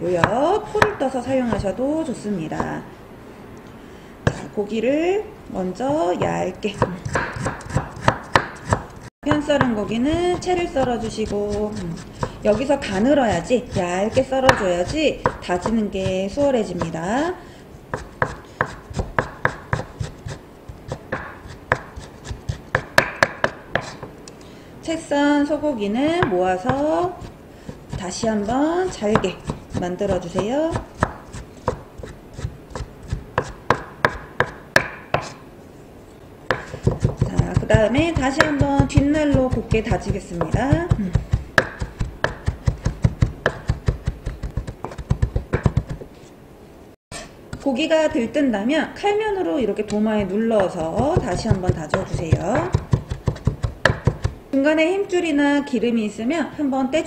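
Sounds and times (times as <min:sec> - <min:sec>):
knife cutting on wooden board: 0:04.3 - 0:04.5, 0:06.8 - 0:16.9, 0:17.9 - 0:24.1, 0:26.2 - 0:35.4, 0:36.5 - 0:46.2, 0:49.9 - 0:54.4.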